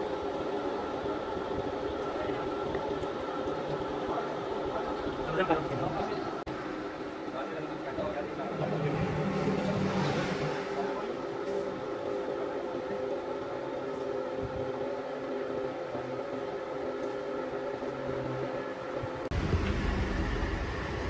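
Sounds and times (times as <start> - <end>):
factory machinery humming drone: 0.0 - 21.0.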